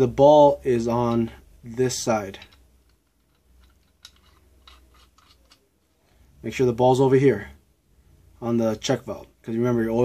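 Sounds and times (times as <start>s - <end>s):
metal fittings clicking together: 2.3s - 5.8s.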